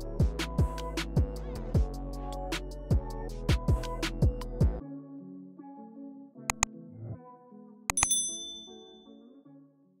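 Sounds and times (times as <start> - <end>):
background music: 0.0 - 10.0
mouse click sound effect: 7.9 - 9.0
notification bell ding: 7.9 - 9.2.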